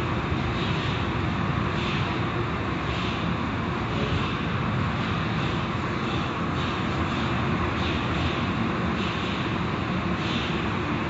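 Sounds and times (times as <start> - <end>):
car wash machinery roaring: 0.0 - 11.0.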